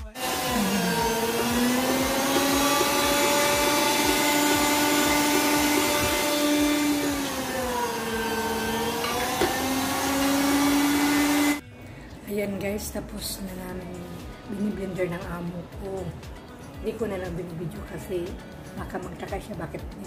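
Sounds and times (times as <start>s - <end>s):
electric meat grinder motor: 0.0s - 11.6s.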